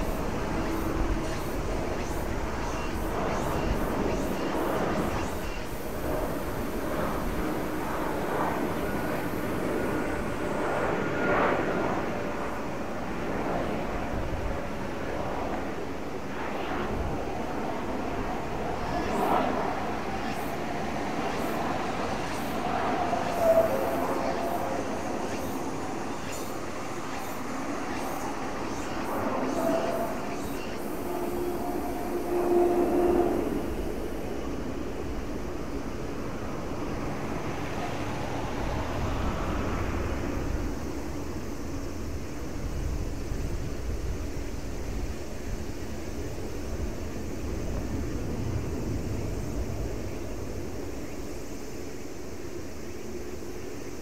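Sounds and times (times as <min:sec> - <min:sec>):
distant aircraft engine drone: 0:00.0 - 0:54.0.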